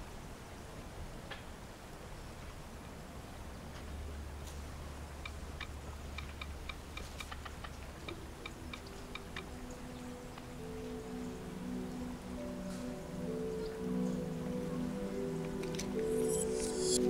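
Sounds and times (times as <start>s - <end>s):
soft background music: 3.3s - 17.0s.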